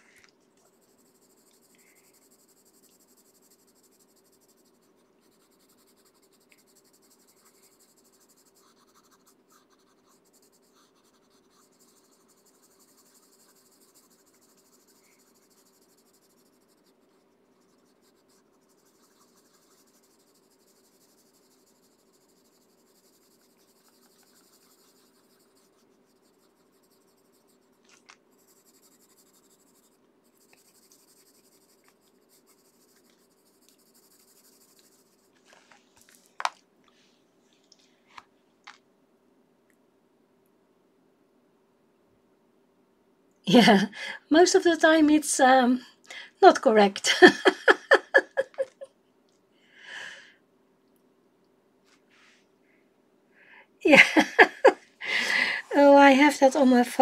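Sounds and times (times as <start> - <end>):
pencil scratching on paper: 0.7 - 35.8, 47.4 - 48.8, 54.2 - 57.0.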